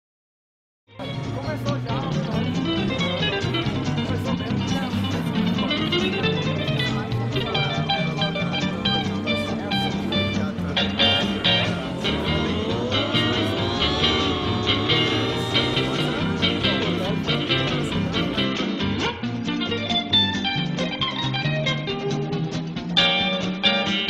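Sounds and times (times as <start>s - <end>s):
bass and rhythm backing: 1.0s - 24.0s
electric guitar music: 1.0s - 24.0s.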